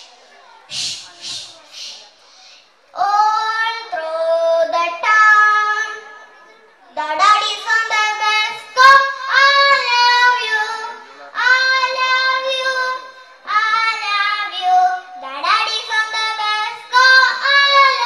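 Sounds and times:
girl singing into a microphone: 0:02.9 - 0:06.1, 0:06.9 - 0:18.0.

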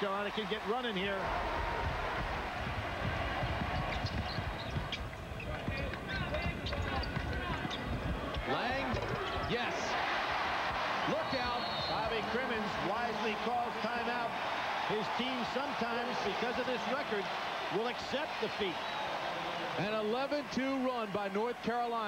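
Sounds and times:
crowd shouts: 0:00.0 - 0:04.6, 0:08.4 - 0:22.0
arena crowd noise: 0:00.0 - 0:22.0.

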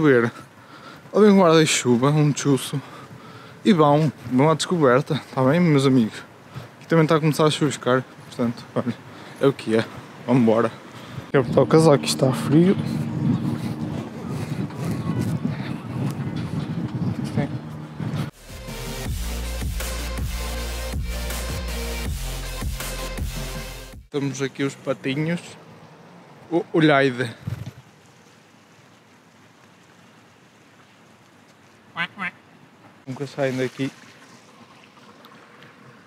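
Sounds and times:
faint outdoor hiss: 0:00.0 - 0:13.9, 0:24.1 - 0:36.0.

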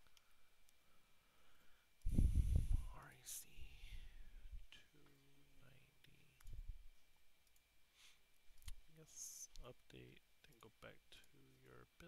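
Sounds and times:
computer mouse clicks: 0:07.4 - 0:07.7.

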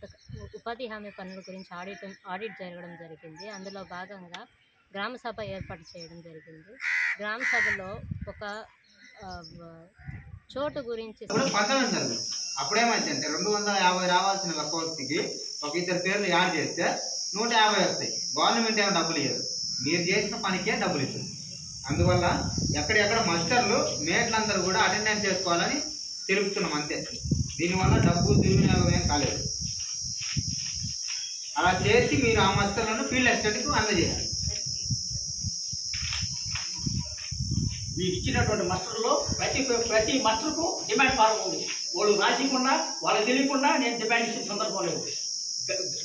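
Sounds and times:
wind rumbling on microphone: 0:00.0 - 0:00.6, 0:05.3 - 0:05.8, 0:07.5 - 0:10.9, 0:21.2 - 0:25.8, 0:27.0 - 0:41.2
person talking: 0:05.0 - 0:06.6, 0:10.5 - 0:14.0, 0:31.6 - 0:34.8, 0:38.0 - 0:45.1
high-pitched buzzing drone: 0:11.3 - 0:46.0
high-pitched whine: 0:11.3 - 0:46.0.

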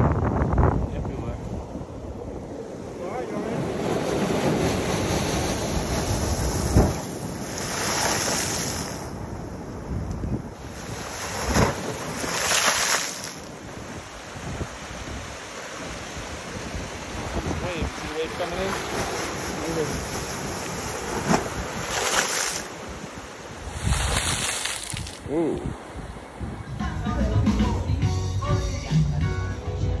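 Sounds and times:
wind buffeting microphone: 0:00.0 - 0:12.5, 0:13.3 - 0:27.0
sea waves breaking on rocks: 0:02.7 - 0:26.4.

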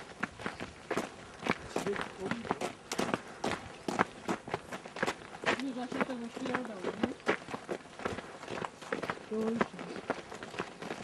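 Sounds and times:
footsteps on forest trail: 0:00.0 - 0:11.0.

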